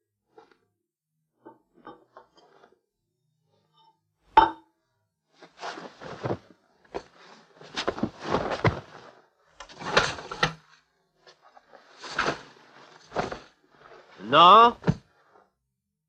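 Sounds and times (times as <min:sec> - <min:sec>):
bedding and clothes rustling: 0:05.4 - 0:10.4, 0:11.2 - 0:15.4.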